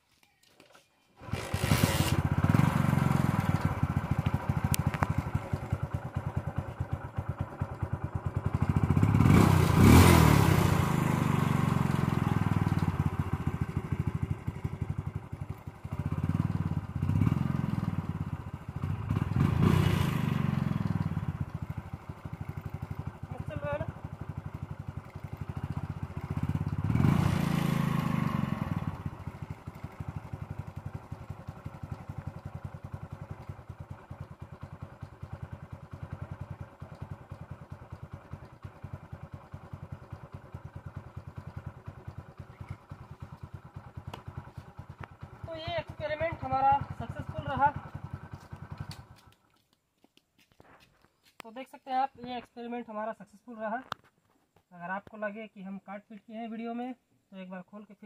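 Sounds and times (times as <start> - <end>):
motorcycle engine idling and revving: 0.6 - 58.0.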